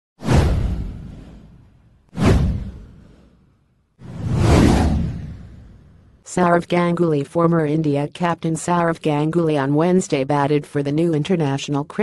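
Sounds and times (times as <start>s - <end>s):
whoosh with deep rumble: 0.2s - 6.2s.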